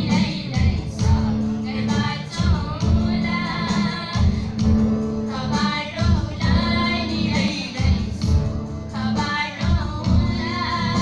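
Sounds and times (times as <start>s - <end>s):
women singing: 0.0s - 4.7s, 5.3s - 11.0s
acoustic guitar: 0.0s - 11.0s.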